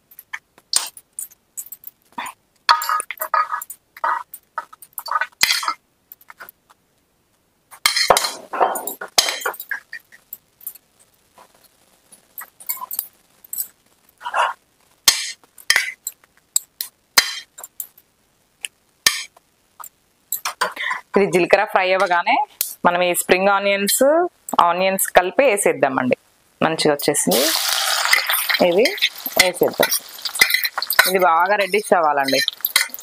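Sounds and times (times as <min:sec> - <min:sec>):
seeds crackling and sizzling in oil: 0:00.1 - 0:06.6, 0:09.0 - 0:14.2, 0:27.0 - 0:33.0.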